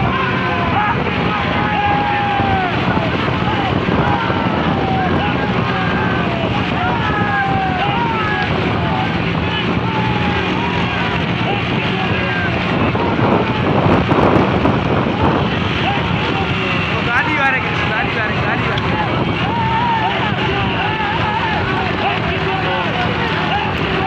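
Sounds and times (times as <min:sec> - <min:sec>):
men shouting and yelling: 0:00.0 - 0:24.0
motorcycle engines running: 0:00.0 - 0:24.0
wind on microphone: 0:00.0 - 0:24.0.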